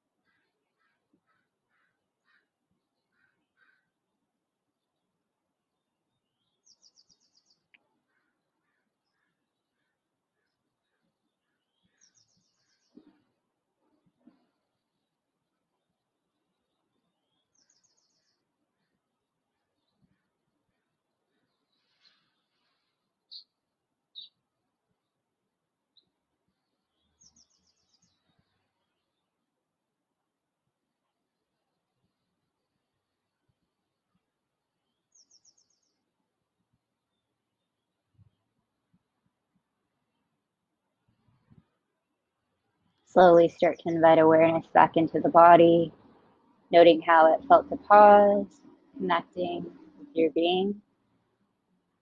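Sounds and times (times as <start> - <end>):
bird chirp: 5.7 - 13.2, 14.8 - 24.4, 25.9 - 29.4, 34.8 - 36.0
bird trill: 23.3 - 23.5, 24.1 - 24.4.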